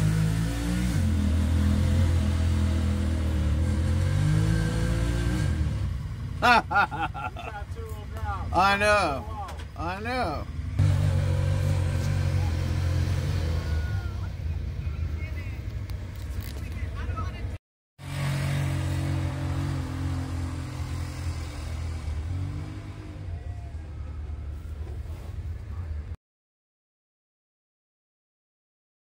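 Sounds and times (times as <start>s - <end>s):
vehicle engine low rumble: 0.0s - 26.2s.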